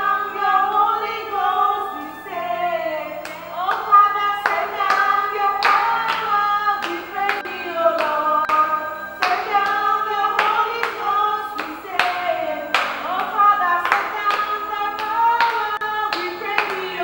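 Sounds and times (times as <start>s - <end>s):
women singing a praise song: 0.0s - 17.0s
hands clapping in time: 3.2s - 17.0s.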